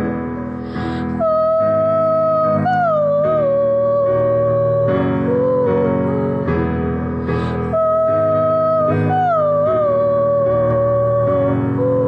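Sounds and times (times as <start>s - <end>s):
piano chords: 0.0s - 12.0s
woman singing wordless note: 1.2s - 6.5s, 7.7s - 12.0s.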